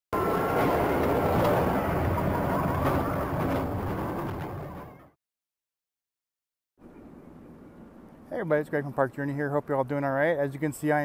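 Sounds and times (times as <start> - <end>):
rail vehicle rumbling and clattering: 0.3 - 5.0.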